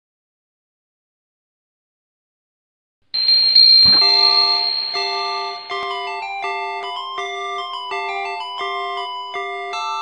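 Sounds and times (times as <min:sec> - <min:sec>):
small bells ringing: 0:03.2 - 0:10.0
dull thump: 0:03.7 - 0:04.7.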